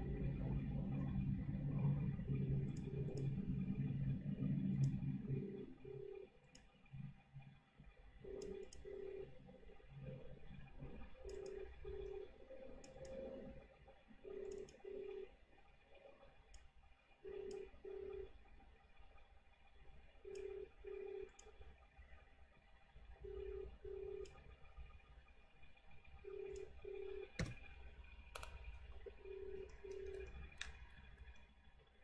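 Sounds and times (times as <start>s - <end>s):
computer clicks: 8.3s - 9.3s, 11.2s - 13.6s, 14.4s - 14.9s, 26.4s - 31.5s
telephone ringback tone: 23.2s - 24.3s, 26.2s - 27.4s.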